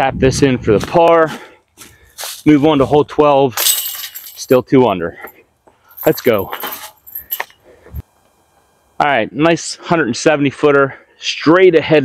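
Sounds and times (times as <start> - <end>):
metal chains clinking: 3.6 - 7.6.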